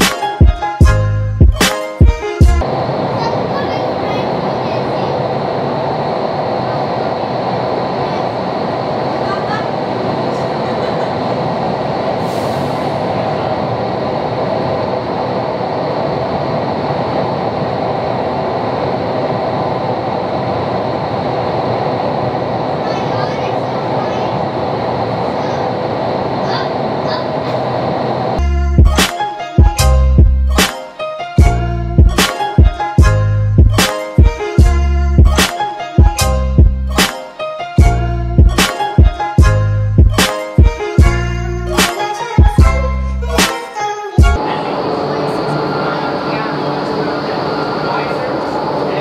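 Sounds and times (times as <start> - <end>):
music with a beat: 0.0 - 2.6, 28.4 - 43.6
steady hum: 2.6 - 29.1, 44.2 - 49.0.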